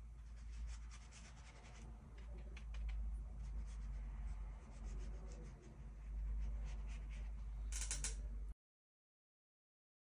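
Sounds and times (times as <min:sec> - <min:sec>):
low steady hum: 0:00.0 - 0:08.6
brush stroking on paper: 0:00.2 - 0:02.4, 0:03.3 - 0:07.4.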